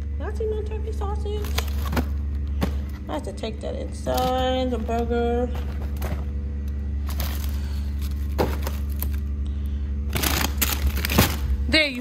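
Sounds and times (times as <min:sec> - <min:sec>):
truck engine drone: 0:00.0 - 0:12.0
frozen food packages rustling: 0:01.2 - 0:12.0.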